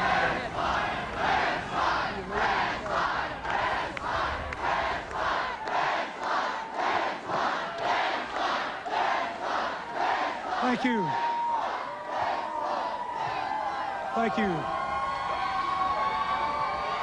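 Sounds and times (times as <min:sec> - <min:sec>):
crowd chanting in unison: 0:00.0 - 0:14.0.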